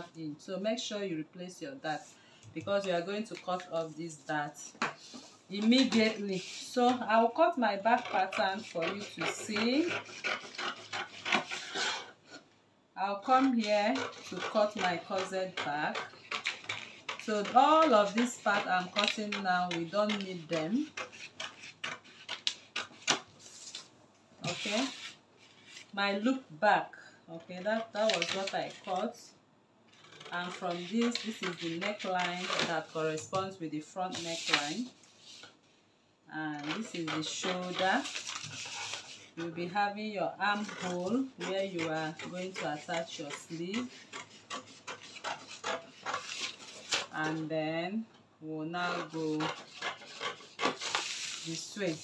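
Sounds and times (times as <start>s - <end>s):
scissors snipping paper: 13.4s - 23.3s, 27.9s - 29.1s, 30.0s - 32.9s, 36.6s - 39.1s
paper rustling: 49.4s - 52.0s.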